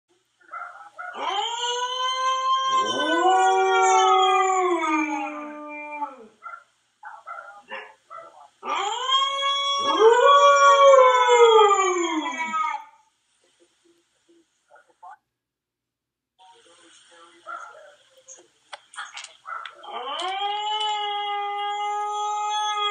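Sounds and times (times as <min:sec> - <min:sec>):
dog whining: 0:00.5 - 0:10.3, 0:19.5 - 0:22.9
husky howling: 0:00.5 - 0:13.0, 0:19.5 - 0:22.9
lower dog howl: 0:00.6 - 0:06.4, 0:08.6 - 0:13.0, 0:19.8 - 0:22.9.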